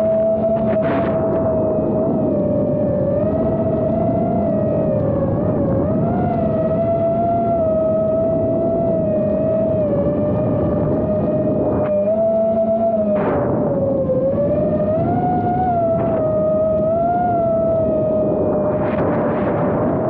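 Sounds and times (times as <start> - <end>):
drone propellers whining: 0.0 - 20.0
low hum: 0.0 - 20.0
wind noise: 0.0 - 20.0.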